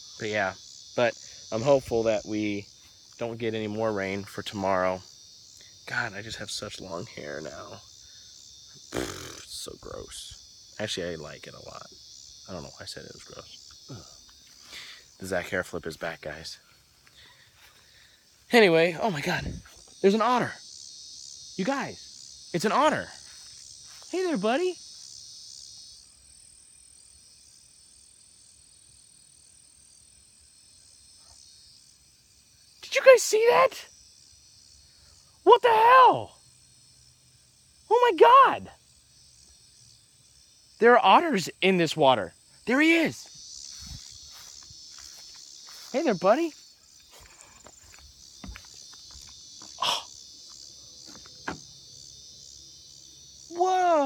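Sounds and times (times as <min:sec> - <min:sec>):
faint insect chirring: 0:00.0 - 0:54.0
sharp knock: 0:51.4 - 0:51.7.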